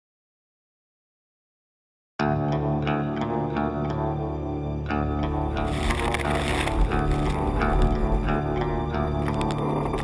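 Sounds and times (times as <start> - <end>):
background music: 2.2 - 10.0.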